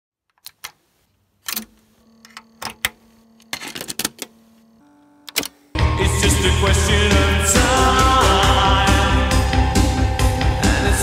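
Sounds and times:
faint steady hum: 0:00.8 - 0:05.8
music: 0:05.7 - 0:11.0.

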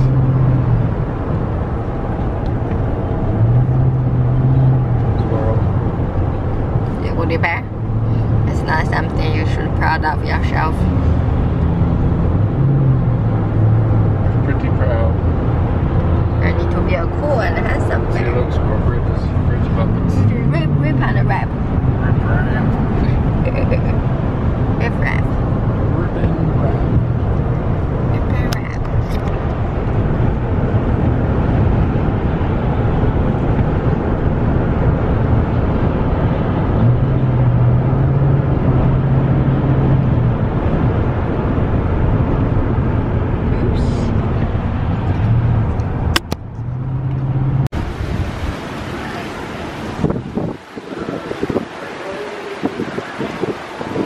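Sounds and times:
road and engine noise in car: 0:00.0 - 0:54.0
wind buffeting microphone: 0:00.0 - 0:54.0.

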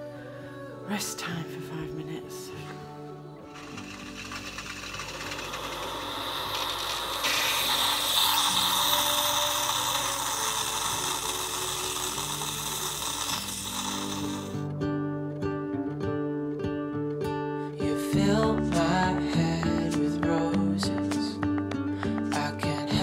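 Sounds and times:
background music: 0:00.0 - 0:23.0
coffee machine pump buzzing: 0:03.5 - 0:14.6
steam hissing: 0:03.5 - 0:14.6.

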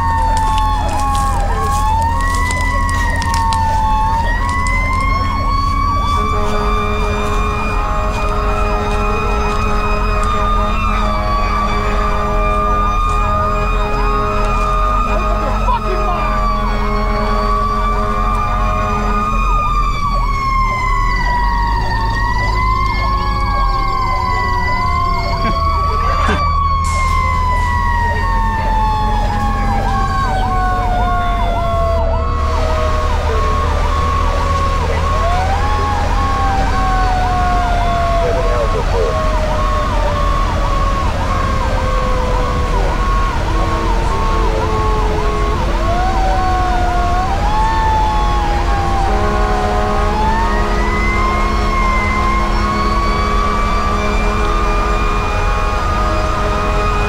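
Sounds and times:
wailing siren: 0:00.0 - 0:57.0
warbling siren: 0:00.0 - 0:57.0.

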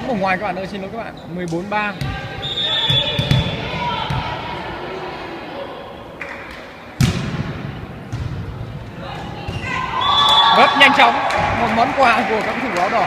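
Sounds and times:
players' voices: 0:00.0 - 0:13.0
volleyball smack echoing: 0:02.8 - 0:04.4, 0:06.2 - 0:10.4
ball thuds: 0:07.0 - 0:08.6.

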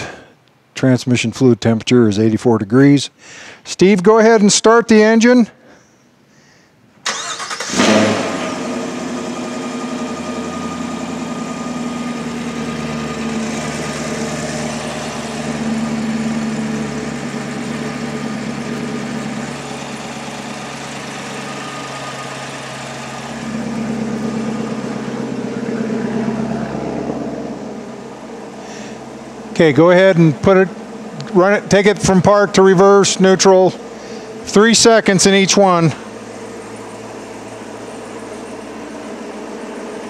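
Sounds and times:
car engine starting and idling: 0:06.9 - 0:40.0.

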